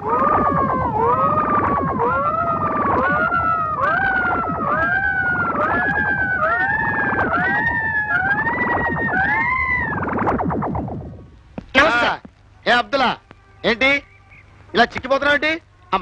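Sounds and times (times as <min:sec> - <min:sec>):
fast buzzing pulse: 0:00.0 - 0:11.3
siren-like rising wails: 0:00.0 - 0:12.0.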